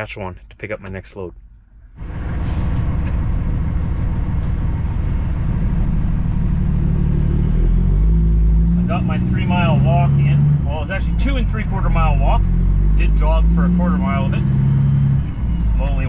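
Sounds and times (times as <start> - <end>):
truck diesel engine droning: 1.9 - 16.0.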